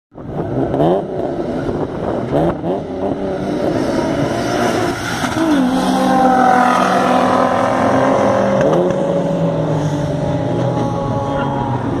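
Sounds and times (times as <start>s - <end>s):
car engines at full throttle: 0.1s - 12.0s.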